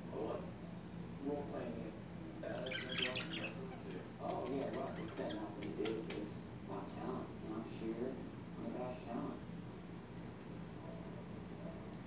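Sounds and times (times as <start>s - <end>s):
budgerigars warbling and chirping: 2.4s - 6.4s.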